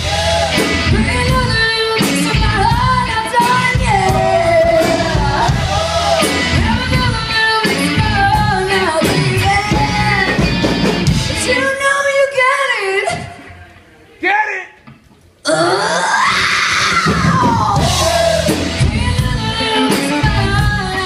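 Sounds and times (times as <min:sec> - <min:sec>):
electric bass: 0:00.0 - 0:11.5, 0:17.0 - 0:21.0
electric guitar: 0:00.0 - 0:11.6, 0:15.5 - 0:21.0
drums: 0:00.0 - 0:13.9, 0:14.8 - 0:21.0
woman singing: 0:00.6 - 0:05.8, 0:06.5 - 0:10.7, 0:11.3 - 0:13.6, 0:17.0 - 0:21.0.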